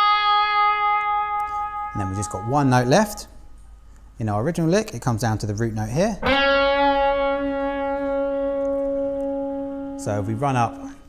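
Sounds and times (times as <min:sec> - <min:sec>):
electric guitar note ringing: 0:00.0 - 0:03.6, 0:06.2 - 0:11.0.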